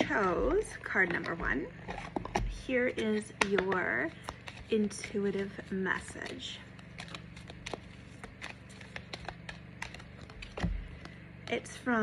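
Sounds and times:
cards being shuffled: 3.0 - 11.8.

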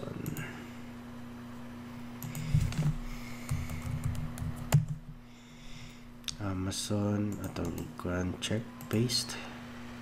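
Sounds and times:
typing on computer keyboard: 3.5 - 5.0.

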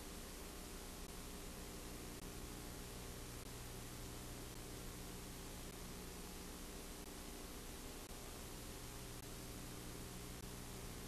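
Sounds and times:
tape hiss with low hum: 0.0 - 11.0.

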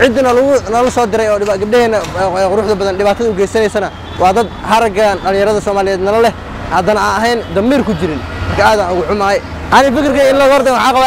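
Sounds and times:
man speaking: 0.0 - 11.0
street traffic: 0.0 - 11.0.

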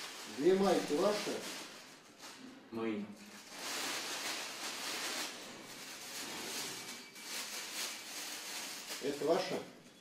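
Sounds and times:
plastic bag rustling: 0.0 - 10.0.

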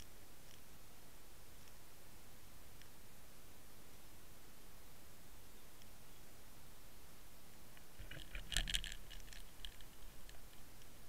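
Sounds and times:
sharp underwater clicks and crackles: 7.8 - 10.9.

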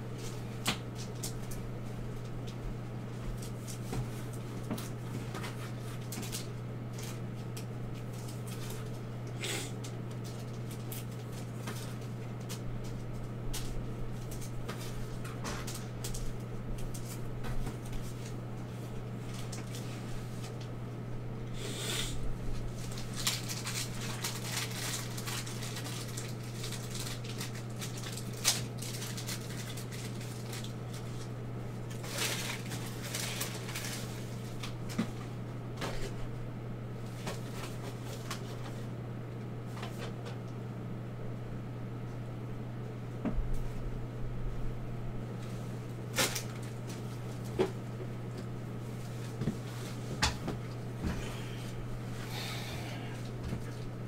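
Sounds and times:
low electrical hum: 0.0 - 54.0
foil wrappers rustling: 0.2 - 20.7, 22.5 - 36.2, 37.0 - 38.9, 45.4 - 48.0.

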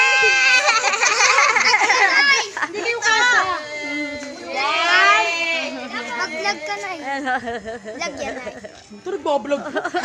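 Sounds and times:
children shouting excitedly: 0.0 - 7.1.

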